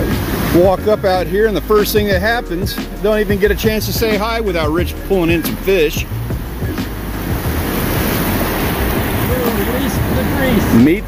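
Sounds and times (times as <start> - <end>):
surf breaking on beach: 0.0 - 11.0.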